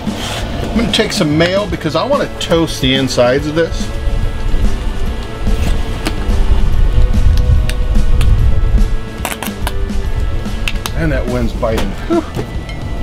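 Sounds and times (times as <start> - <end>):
background music: 0.0 - 13.0
wind buffeting microphone: 0.4 - 12.0.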